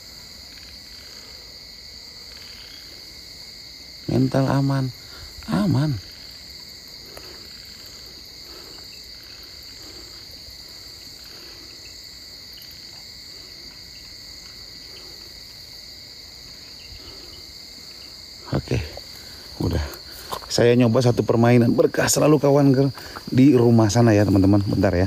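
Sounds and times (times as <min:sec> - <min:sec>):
crickets chirping: 0:00.0 - 0:25.0.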